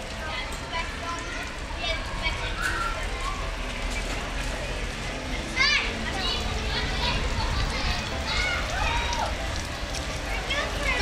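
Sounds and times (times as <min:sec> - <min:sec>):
children's voices: 0:00.0 - 0:11.0
child's high-pitched shout: 0:02.5 - 0:03.4.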